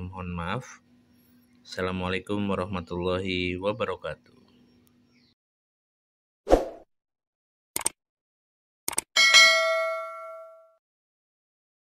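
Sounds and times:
bright bell ding: 9.2s - 10.8s.

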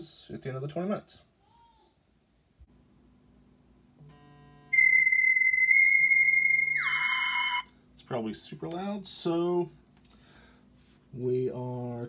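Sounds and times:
timer alarm electronic tones: 4.7s - 7.7s.

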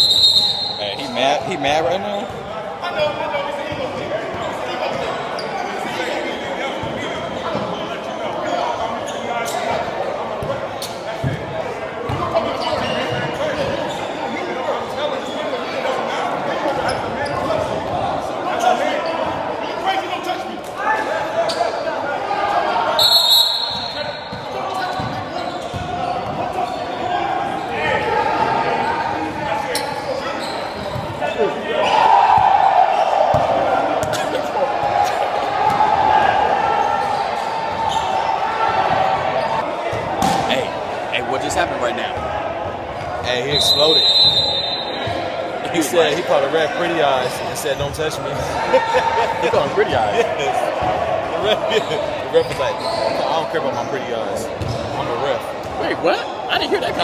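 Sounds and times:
hubbub of voices: 0.0s - 57.0s.

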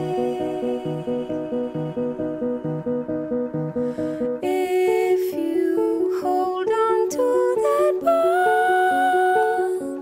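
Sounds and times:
voice holding long wordless note: 0.0s - 5.2s.

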